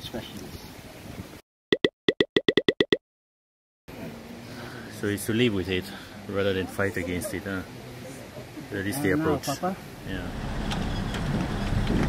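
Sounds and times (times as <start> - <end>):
car engine and road noise: 3.9 - 12.0.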